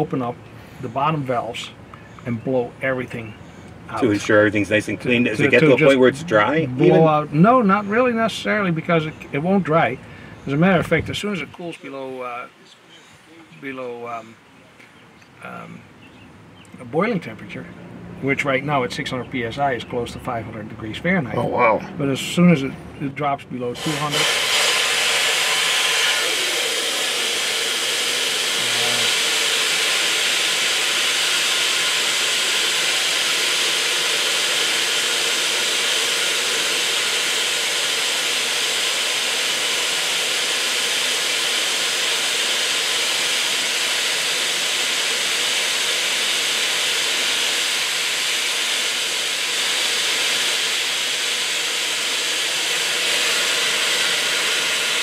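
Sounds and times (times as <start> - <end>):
steam blasting hiss: 23.8 - 55.0.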